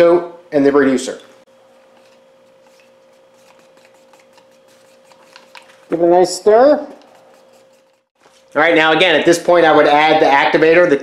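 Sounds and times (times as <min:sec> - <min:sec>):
stick scraping plastic cup: 0:01.9 - 0:05.9.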